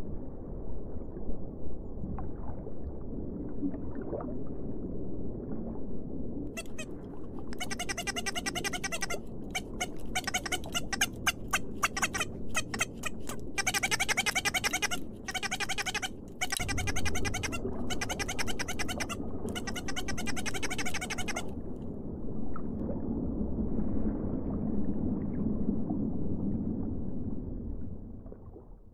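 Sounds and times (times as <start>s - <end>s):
waterbird chick peeping: 6.6s - 6.9s, 7.5s - 21.5s.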